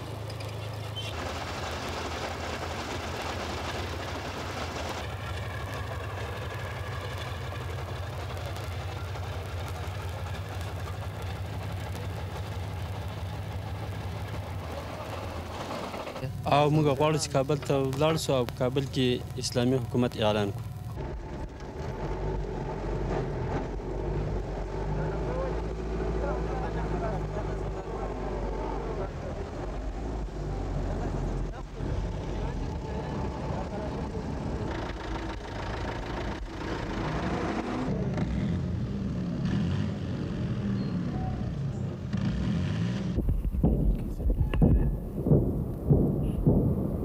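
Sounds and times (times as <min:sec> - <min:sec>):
vehicle engine running: 0:00.0 - 0:47.0
people's voices: 0:08.6 - 0:20.6, 0:24.9 - 0:35.0.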